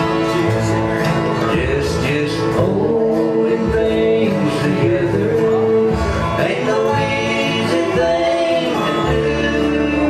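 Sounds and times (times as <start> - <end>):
acoustic guitars: 0.0 - 10.0
resonator guitar: 0.0 - 10.0
upright bass: 0.0 - 10.0.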